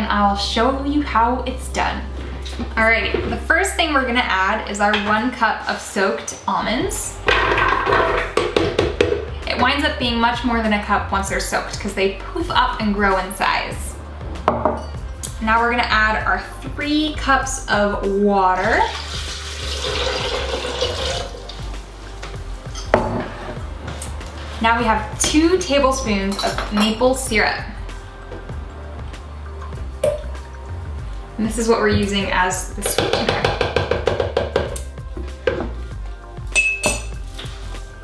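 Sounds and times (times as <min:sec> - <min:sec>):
soft background music: 0:00.0 - 0:38.0
glass bottles clinking: 0:07.3 - 0:09.2, 0:14.5 - 0:15.0, 0:22.7 - 0:23.6, 0:29.5 - 0:30.6, 0:36.5 - 0:37.2
jug knocking on counter: 0:07.3 - 0:09.3, 0:14.5 - 0:14.8, 0:22.9 - 0:23.3, 0:31.9 - 0:34.8
water pouring into blender jar: 0:18.9 - 0:21.6.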